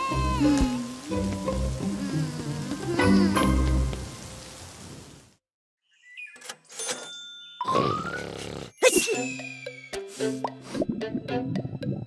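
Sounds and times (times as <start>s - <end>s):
rain hiss: 0.0s - 5.4s
playful cartoon music: 7.6s - 12.0s.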